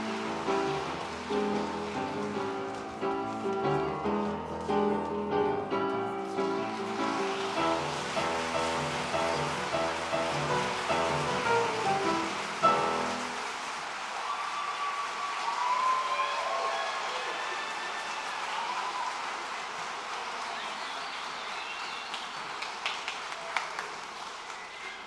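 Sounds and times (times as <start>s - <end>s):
audience applause and cheering: 0.0s - 25.0s.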